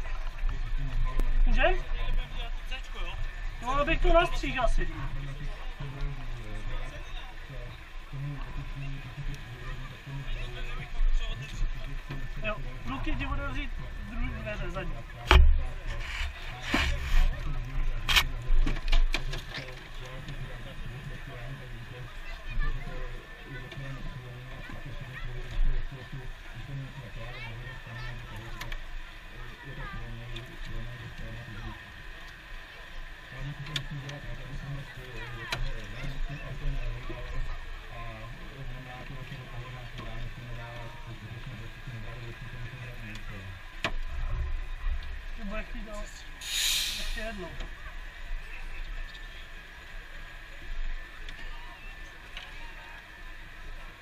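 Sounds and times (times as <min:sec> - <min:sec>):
low machine hum: 0:00.0 - 0:54.0
muffled voices: 0:00.0 - 0:54.0.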